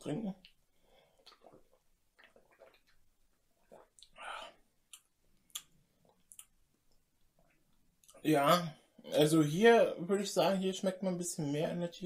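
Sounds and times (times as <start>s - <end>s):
person swallowing: 1.2s - 5.7s
breathy mouth sound: 3.6s - 5.7s
lip-smacking clicks: 4.9s - 7.0s.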